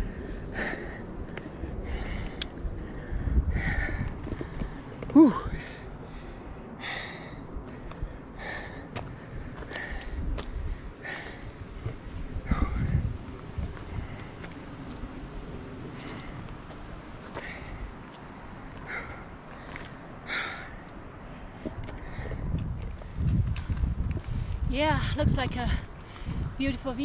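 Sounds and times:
wind rumble on microphone: 0.0 - 27.0
footsteps on rocky gravel: 7.7 - 15.2, 20.8 - 26.5.

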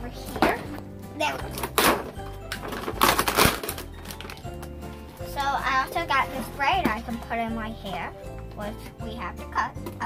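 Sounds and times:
background music: 0.0 - 10.0
packaging rustling and crinkling: 1.4 - 5.6.

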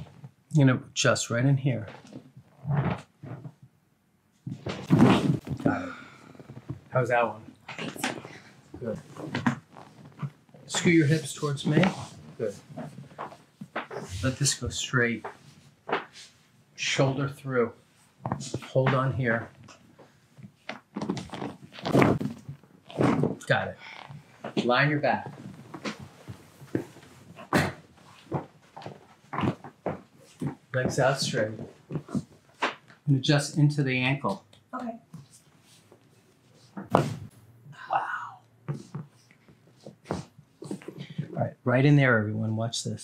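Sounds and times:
thunk and back joints cracking: 20.4 - 23.4.

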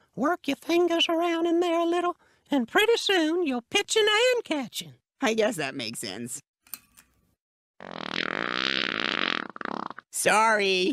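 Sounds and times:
cartoon fart sound effect: 7.8 - 10.1.

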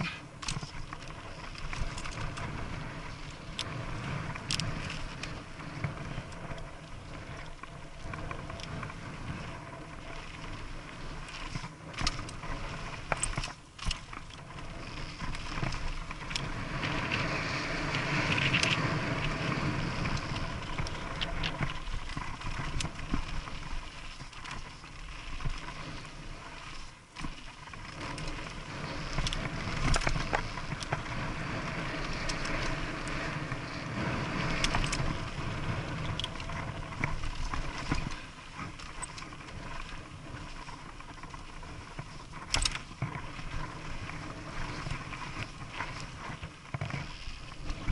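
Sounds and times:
bike clicks and rattles: 0.0 - 47.9
tyre and wind rush: 0.0 - 47.9.

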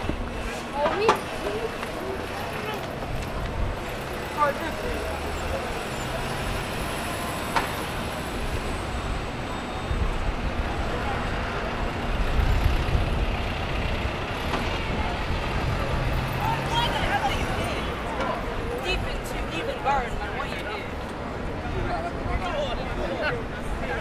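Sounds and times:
vehicles passing: 0.0 - 24.0.

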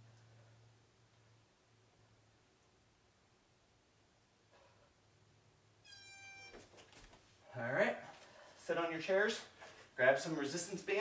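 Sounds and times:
electronic timer beep: 5.9 - 6.6.

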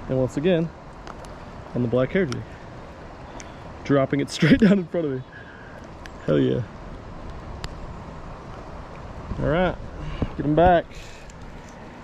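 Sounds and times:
creek water running over rocks: 0.0 - 12.0
wind rumble on microphone: 6.6 - 11.0.

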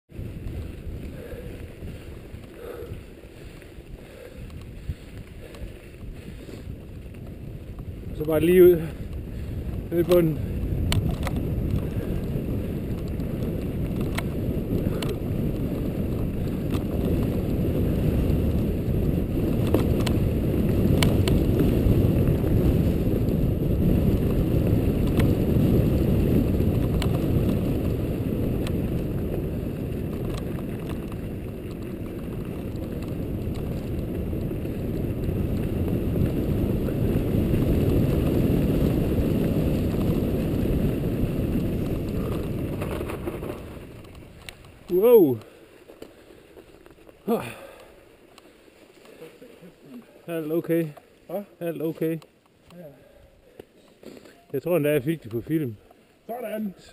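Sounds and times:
wind buffeting microphone: 0.1 - 49.1
tyre rumble on snow: 0.1 - 52.2
bike clicks: 0.2 - 56.1.

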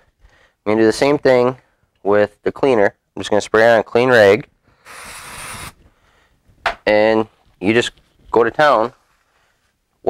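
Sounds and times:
aerosol spray hiss: 4.8 - 5.8.

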